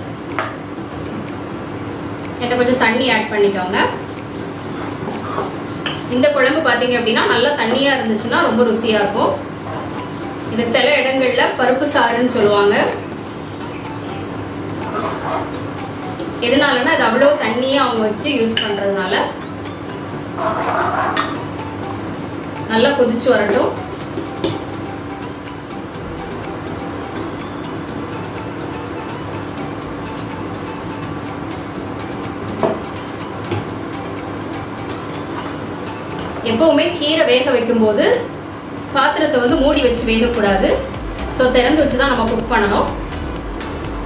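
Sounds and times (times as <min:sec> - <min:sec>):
steady hum: 0:00.0 - 0:44.0.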